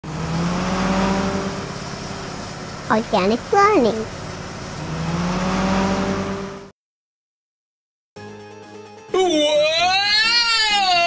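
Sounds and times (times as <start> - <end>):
bus engine hum: 0.0 - 6.7.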